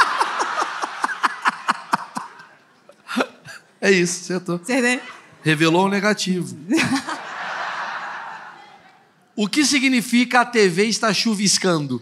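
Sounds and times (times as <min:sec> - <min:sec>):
laughter into a microphone: 0:00.0 - 0:02.6, 0:06.7 - 0:09.0.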